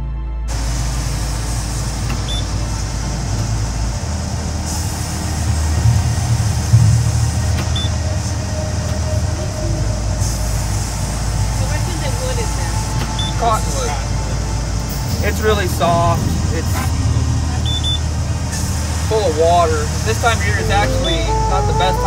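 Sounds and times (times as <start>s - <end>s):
background music: 5.5s - 15.2s, 20.1s - 22.0s.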